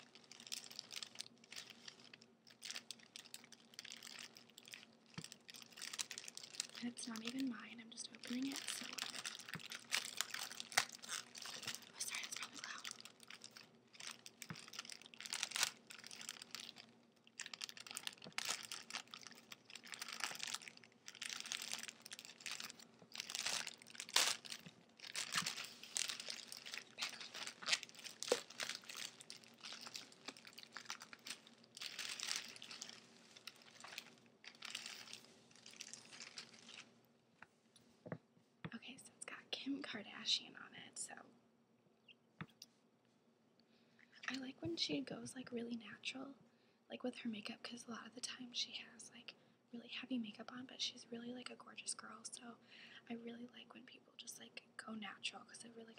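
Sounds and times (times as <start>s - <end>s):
plastic wrapper tearing and crinkling: 0.0s - 36.9s.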